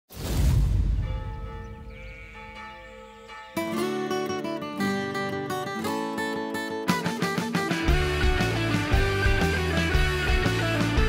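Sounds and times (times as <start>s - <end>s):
church bell ringing: 1.0s - 4.7s
acoustic guitar music: 1.5s - 11.0s.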